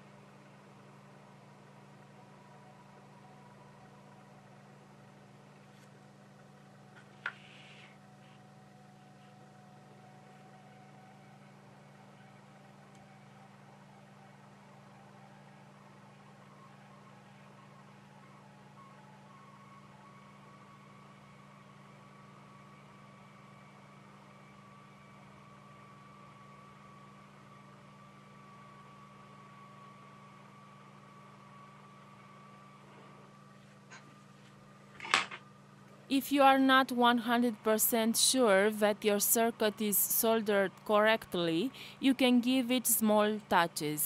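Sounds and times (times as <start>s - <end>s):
hot air station hum and whine: 0.0s - 44.0s.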